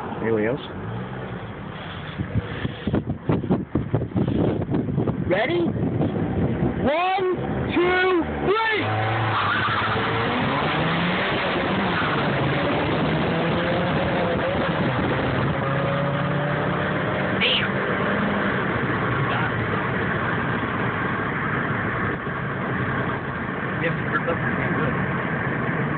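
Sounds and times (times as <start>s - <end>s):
car engine accelerating hard: 0.0s - 25.9s
road and wind noise: 0.0s - 25.9s.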